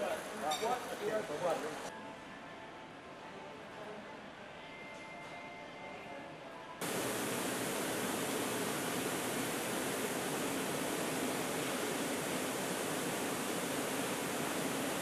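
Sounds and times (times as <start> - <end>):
spa jets bubbling water: 6.8 - 15.0.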